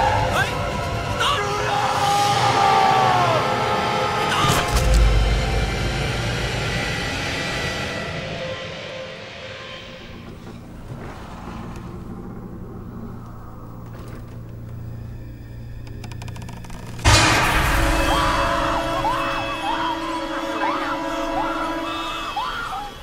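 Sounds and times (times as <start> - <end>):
horror film score: 0.0 - 23.0
low drone: 0.0 - 23.0.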